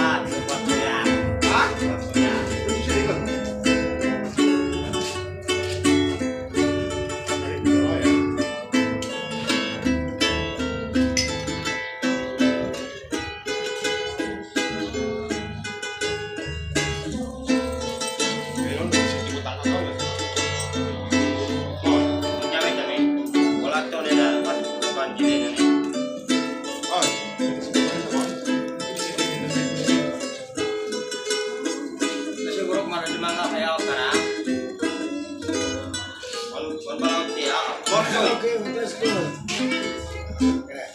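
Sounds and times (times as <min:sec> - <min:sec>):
ukulele and acoustic guitar playing: 0:00.0 - 0:40.9.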